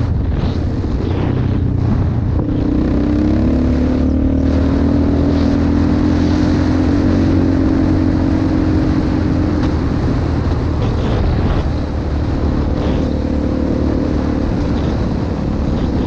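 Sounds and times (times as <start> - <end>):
atv engine running: 0.0 - 16.0.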